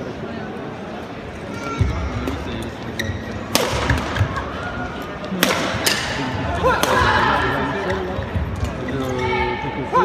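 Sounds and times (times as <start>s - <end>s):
racket striking shuttlecock: 3.5s - 4.3s.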